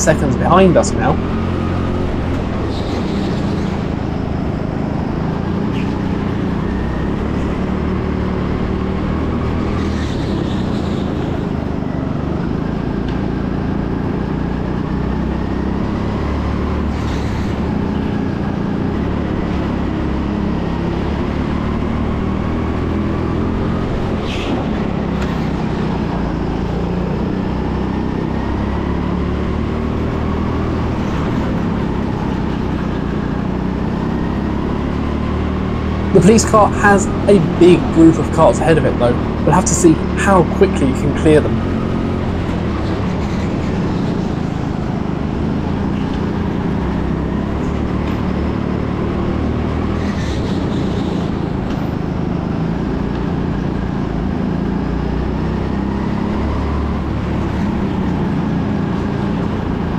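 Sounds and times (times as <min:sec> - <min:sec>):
go-kart engine rumble and whine: 0:00.0 - 0:59.9.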